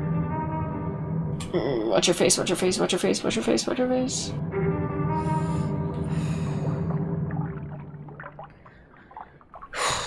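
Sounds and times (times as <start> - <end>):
water trickling and dripping: 6.0 - 10.0.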